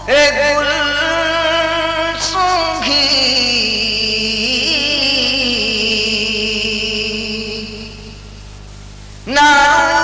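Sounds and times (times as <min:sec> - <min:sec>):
man singing unaccompanied: 0:00.0 - 0:08.2, 0:09.3 - 0:10.0.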